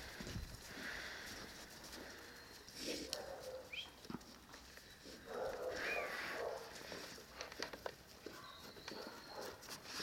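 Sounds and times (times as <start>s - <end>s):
dog footsteps crunching in snow: 0.0s - 10.0s.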